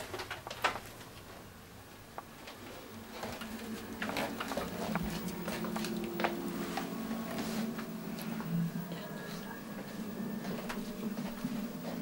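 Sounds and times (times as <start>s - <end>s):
low steady hum: 0.0s - 12.0s
footsteps on wooden floor: 2.5s - 8.5s, 9.6s - 12.0s.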